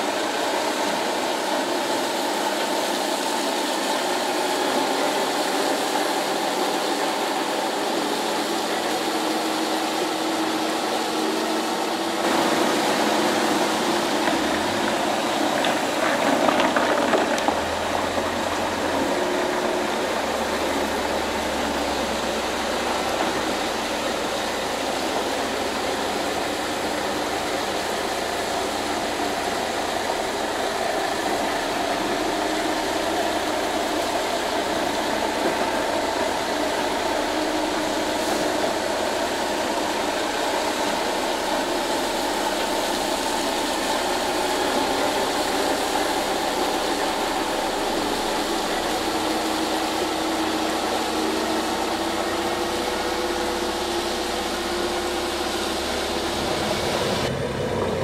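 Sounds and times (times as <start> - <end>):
diesel truck engine running: 0.0 - 58.0
tyre and gravel noise: 13.9 - 20.4.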